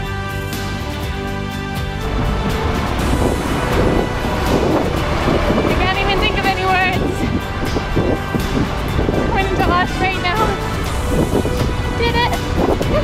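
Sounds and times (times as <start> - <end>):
background music: 0.0 - 13.0
wind on microphone: 2.0 - 13.0
woman's excited voice: 12.0 - 13.0.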